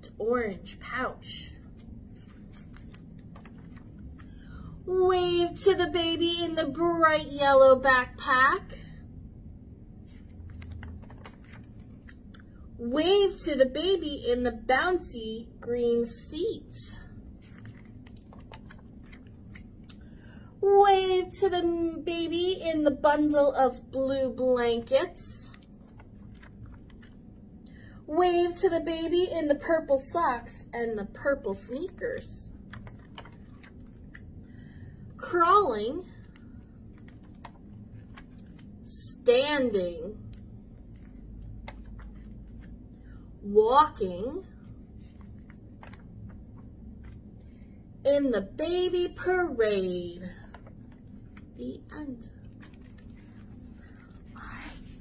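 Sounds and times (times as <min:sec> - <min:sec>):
book pages turning: 0:01.6 - 0:04.5, 0:09.9 - 0:12.5, 0:17.0 - 0:20.2, 0:24.6 - 0:27.6, 0:31.4 - 0:38.9, 0:40.2 - 0:43.2, 0:44.5 - 0:47.8, 0:50.3 - 0:55.0.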